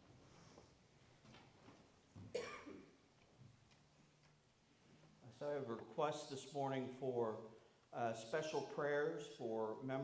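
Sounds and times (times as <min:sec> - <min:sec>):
person coughing: 0:02.3 - 0:03.0.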